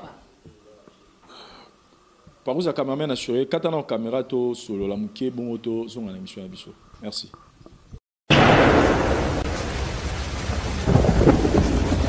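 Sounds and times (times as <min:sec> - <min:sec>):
thunder rumble: 0:08.3 - 0:12.0.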